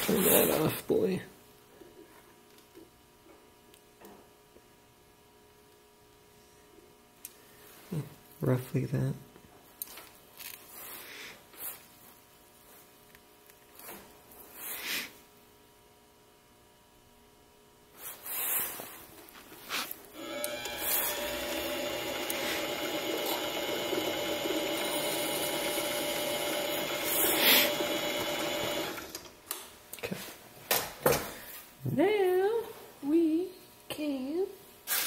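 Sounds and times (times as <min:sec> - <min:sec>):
lathe motor humming: 0:20.2 - 0:29.3.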